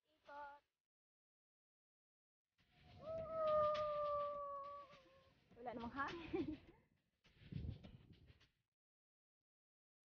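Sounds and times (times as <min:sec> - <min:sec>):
laughter: 0:06.2 - 0:06.8.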